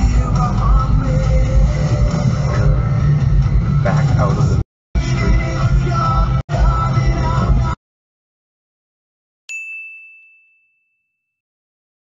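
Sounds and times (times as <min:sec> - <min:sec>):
bright ding: 0:09.5 - 0:11.4.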